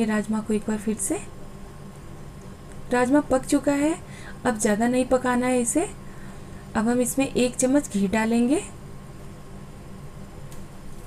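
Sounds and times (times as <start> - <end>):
kitchen background hum: 0.0 - 11.0.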